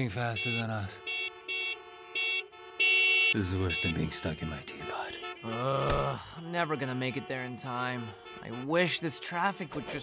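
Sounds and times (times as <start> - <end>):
steady low horn tone: 0.0 - 10.0
loud car horn blast: 0.3 - 10.0
short high car horn toots: 0.4 - 4.1.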